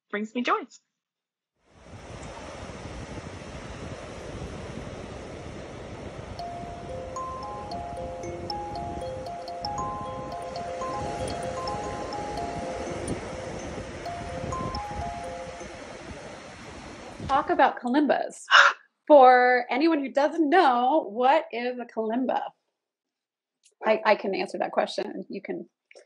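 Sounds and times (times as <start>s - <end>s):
wind on microphone: 1.8s - 17.6s
kalimba notes ringing: 6.4s - 17.4s.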